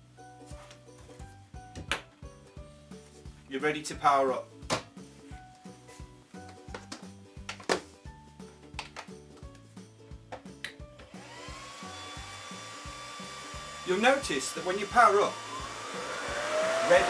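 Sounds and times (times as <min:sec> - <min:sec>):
background music: 0:00.0 - 0:17.0
cooling fans whining: 0:15.3 - 0:17.0.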